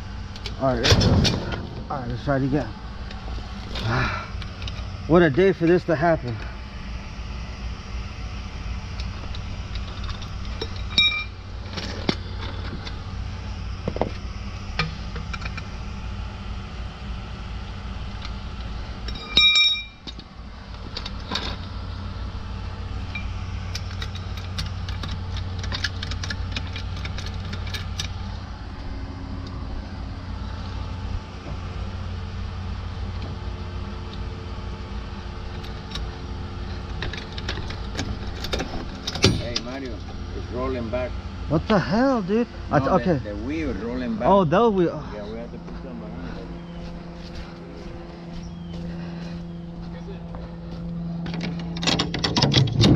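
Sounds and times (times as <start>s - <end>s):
steady low rumble: 0.0s - 52.9s
loud ringing metal clank: 0.7s - 2.8s, 9.9s - 11.6s, 19.0s - 20.1s, 38.4s - 40.0s
floor jack metallic clicks and clanks: 51.2s - 52.9s.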